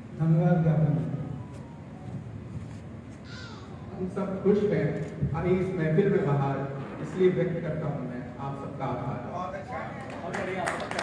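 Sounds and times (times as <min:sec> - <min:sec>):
hall background noise: 0:00.0 - 0:11.0.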